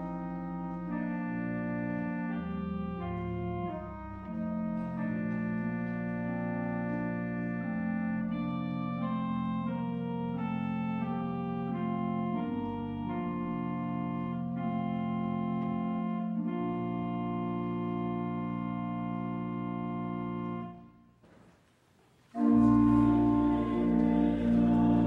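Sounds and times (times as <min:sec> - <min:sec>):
church organ chords: 0:00.0 - 0:21.2, 0:22.3 - 0:25.0.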